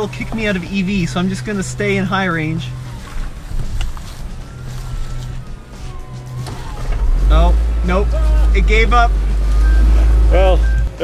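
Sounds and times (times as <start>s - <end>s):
electric drive whine: 0.0s - 11.0s
tires on rocks: 0.0s - 11.0s.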